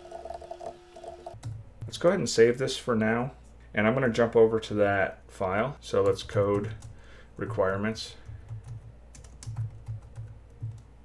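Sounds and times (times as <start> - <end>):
faint steady hum: 0.0 - 11.0
computer keyboard keystrokes: 8.2 - 10.9.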